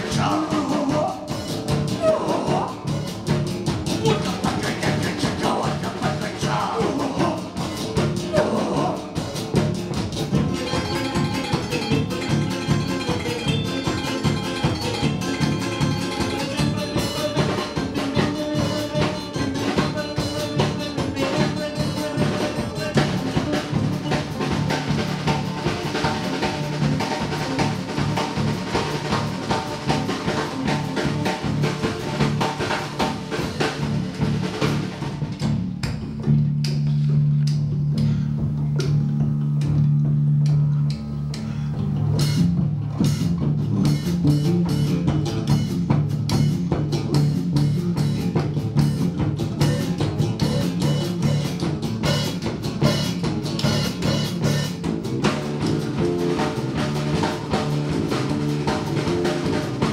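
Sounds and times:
live band music: 0:00.0 - 0:59.9.

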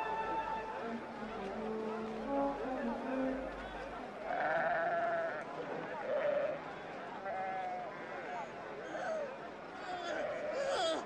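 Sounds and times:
film music: 0:00.0 - 0:04.1
sheep bleating: 0:04.3 - 0:05.4.

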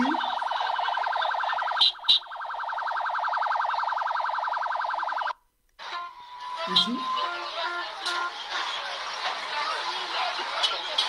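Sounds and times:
pulsing electronic siren: 0:00.0 - 0:05.4, 0:06.0 - 0:08.4.

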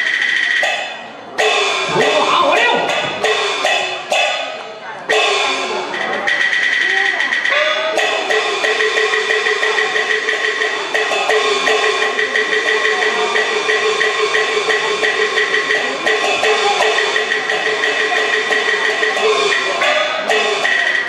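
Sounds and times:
percussion beat: 0:00.0 - 0:21.0.

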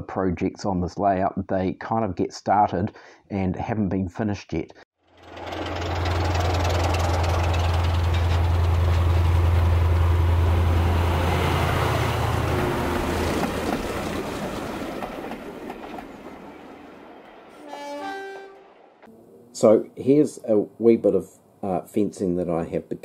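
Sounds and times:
model train passing: 0:05.0 - 0:19.7.

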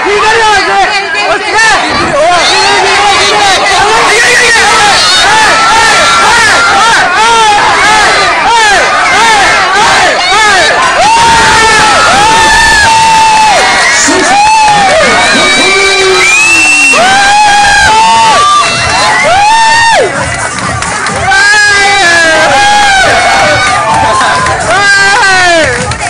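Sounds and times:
crowd shouting and yelling: 0:00.0 - 0:26.0
long held shouts: 0:01.5 - 0:20.1.

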